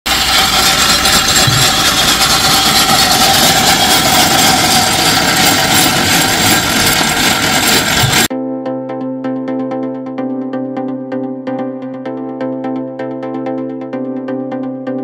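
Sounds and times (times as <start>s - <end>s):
sawmill saw whining: 0.1s - 8.3s.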